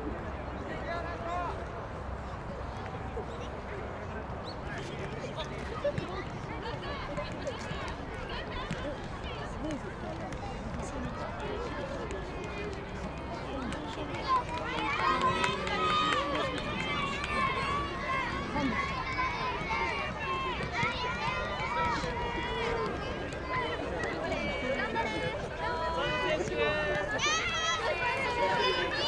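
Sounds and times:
chatter of spectators: 0.0s - 29.0s.

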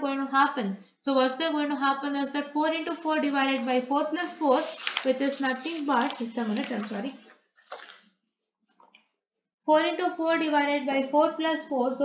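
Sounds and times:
person speaking: 1.4s - 8.0s.

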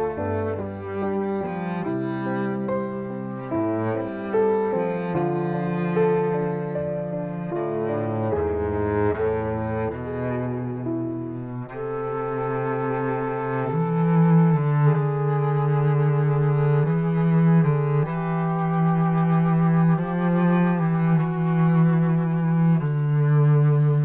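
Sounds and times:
bowed cello slow melody: 0.0s - 24.0s.

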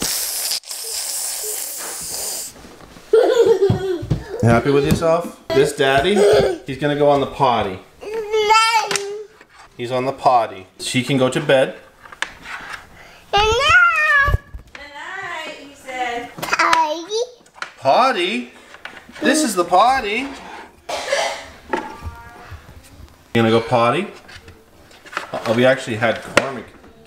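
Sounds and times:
child breathing on microphone: 1.0s - 2.6s, 12.9s - 13.4s
child's high-pitched wordless call: 8.0s - 8.9s, 13.4s - 14.4s.

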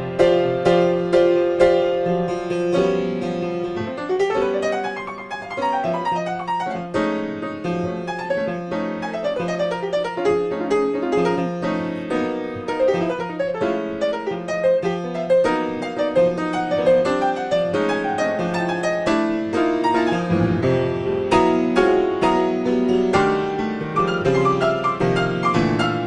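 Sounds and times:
solo jazz piano: 0.0s - 26.0s.

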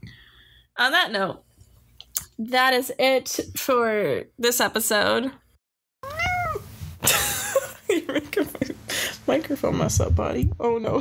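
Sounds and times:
cat meowing: 6.0s - 6.7s
rustling and knocking on microphone: 9.6s - 11.0s.

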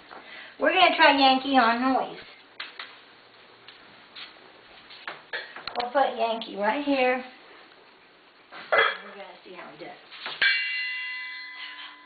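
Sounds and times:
faint footsteps on tile: 3.6s - 5.3s.

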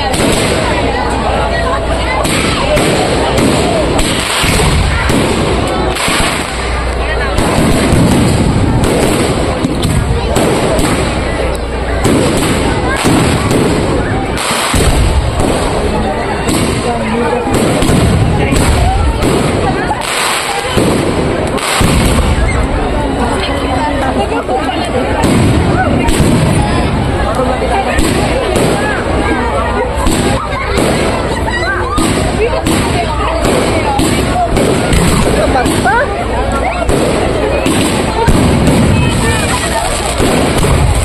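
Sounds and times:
fireworks bangs: 0.0s - 41.0s.

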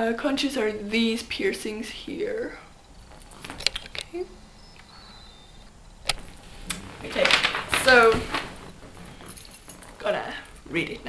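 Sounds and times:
faint high steady tone: 0.0s - 11.0s
low rustling: 0.0s - 11.0s.

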